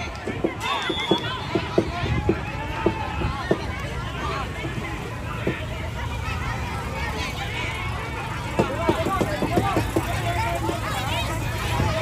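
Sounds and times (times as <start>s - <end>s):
children shouting calls: 0.0s - 12.0s
crowd chatter: 0.0s - 12.0s.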